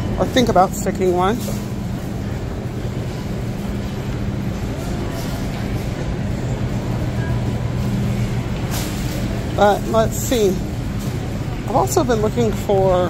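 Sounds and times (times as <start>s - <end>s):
faint shoppers' background noise: 0.0s - 13.0s
low hum of refrigerated cases: 0.0s - 13.0s.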